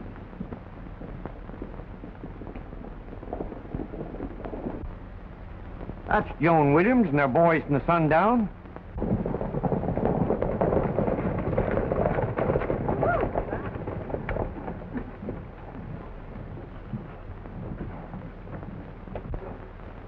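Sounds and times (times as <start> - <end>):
horse hoofbeats on dirt: 0.0 - 4.9, 9.0 - 19.6.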